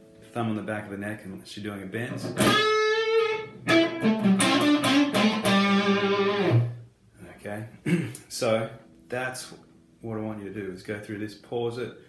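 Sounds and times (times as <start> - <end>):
electric guitar picked phrase: 2.4 - 6.8.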